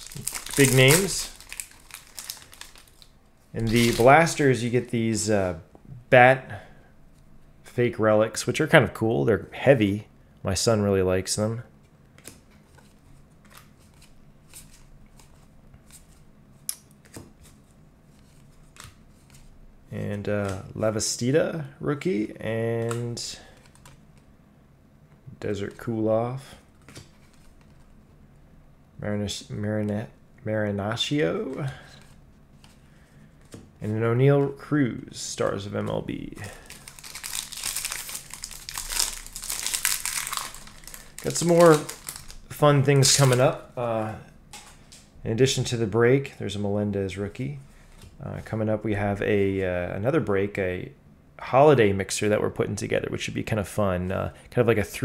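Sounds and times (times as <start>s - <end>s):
foil wrapper tearing and crinkling: 0.0s - 4.4s, 36.6s - 42.4s.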